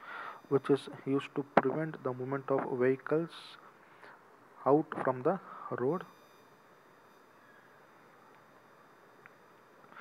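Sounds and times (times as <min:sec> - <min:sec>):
faint recording hiss: 0:00.0 - 0:10.0
high-pitched electronic tones: 0:05.8 - 0:07.9.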